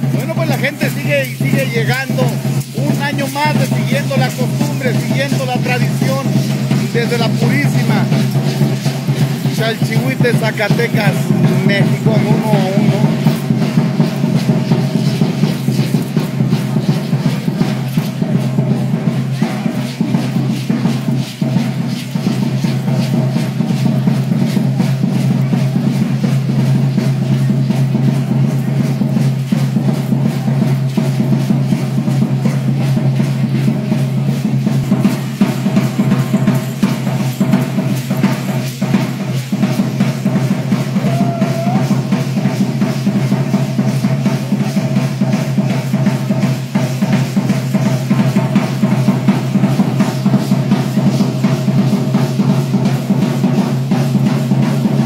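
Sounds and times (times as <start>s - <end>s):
dance drum beating fast: 0.0s - 55.0s.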